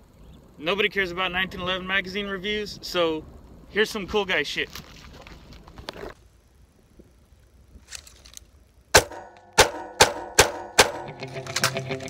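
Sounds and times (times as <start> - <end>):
gunshots: 9.0 - 11.3.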